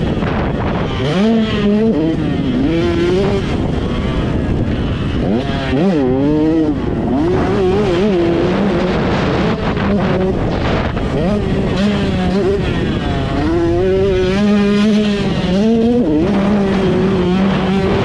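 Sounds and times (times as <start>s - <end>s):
motocross engine revving: 0.0s - 18.0s.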